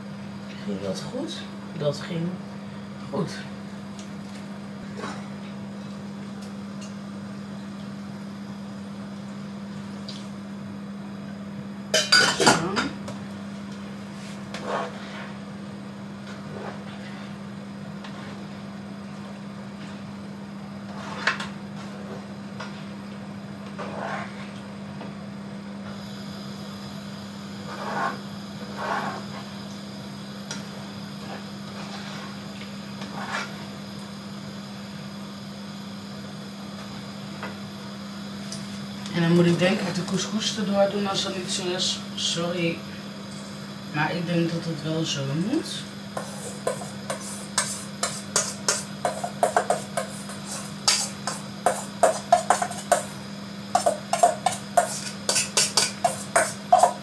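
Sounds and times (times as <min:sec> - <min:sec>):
steady low hum: 0:00.0 - 0:57.0
spatula scraping frying pan: 0:14.5 - 0:15.4, 0:23.8 - 0:24.4, 0:27.7 - 0:29.3, 0:46.1 - 0:53.1, 0:53.8 - 0:57.0.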